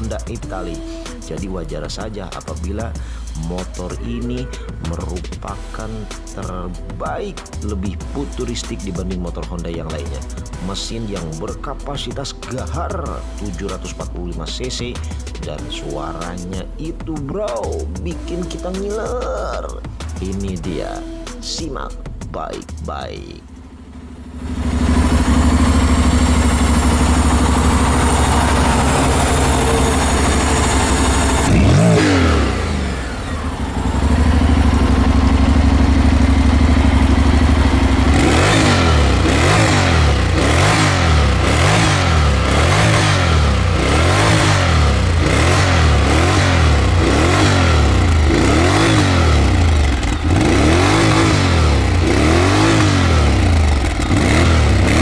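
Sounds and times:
motorcycle engine revving: 23.4s - 55.0s.

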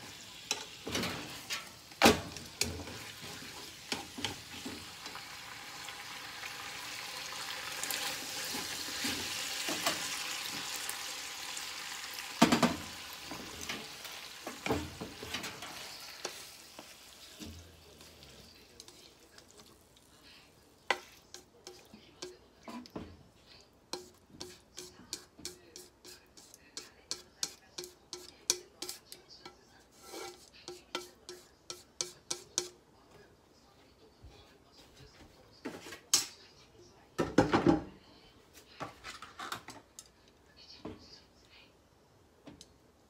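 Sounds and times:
meat and peppers sizzling in pan: 0.0s - 23.0s.

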